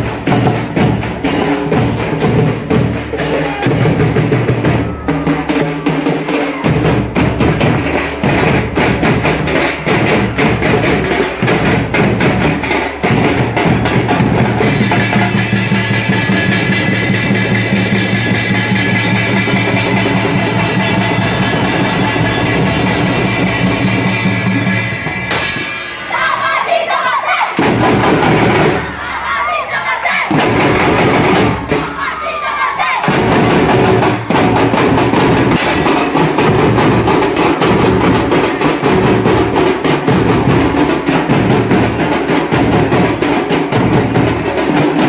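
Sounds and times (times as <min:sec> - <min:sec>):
drums and percussion beat: 0:00.0 - 0:45.0.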